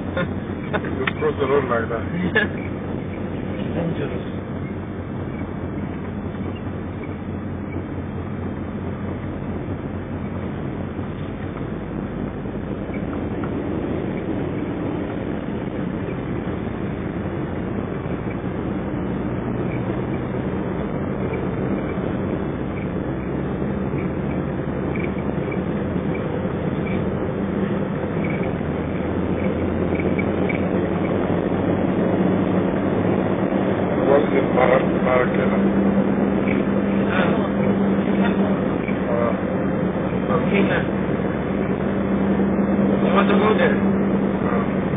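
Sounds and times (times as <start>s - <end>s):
car engine and tyre rumble: 0.0s - 44.9s.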